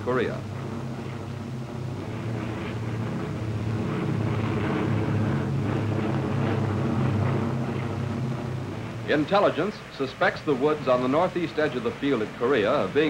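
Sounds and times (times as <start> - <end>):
propeller aircraft engines droning: 0.0 - 13.0.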